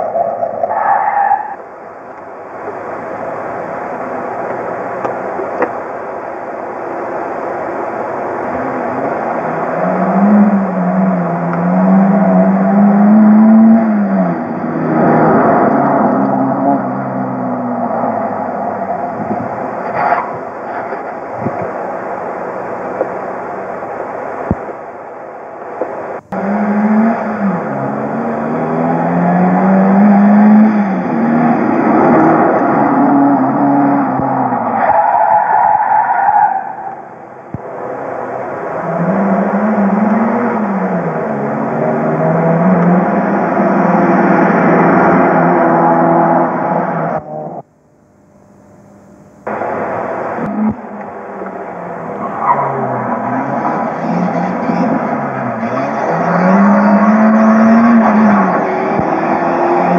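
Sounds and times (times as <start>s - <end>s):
rally car engines revving: 0.0s - 47.6s, 49.4s - 59.9s.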